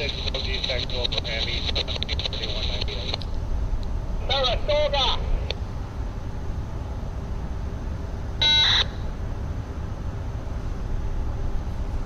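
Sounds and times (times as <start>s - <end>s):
voice over scanner radio: 0.0s - 3.2s, 4.2s - 5.5s.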